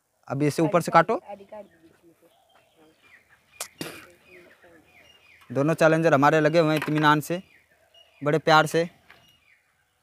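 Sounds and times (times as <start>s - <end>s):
faint bird chirps: 0.6s - 10.0s.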